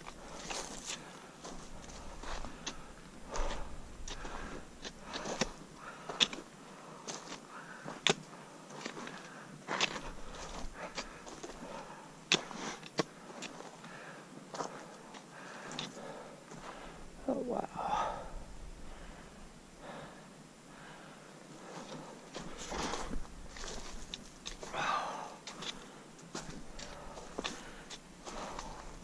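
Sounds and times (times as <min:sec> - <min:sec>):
footsteps crunching on forest floor: 0:00.0 - 0:06.5, 0:21.6 - 0:29.0.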